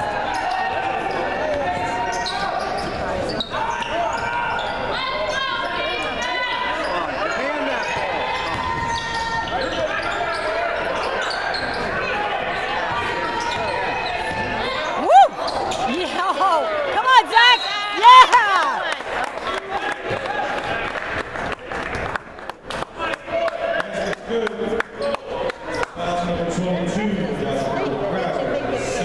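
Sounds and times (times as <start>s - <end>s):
spectators' voices: 0.0s - 29.0s
loud shout: 12.0s - 19.0s.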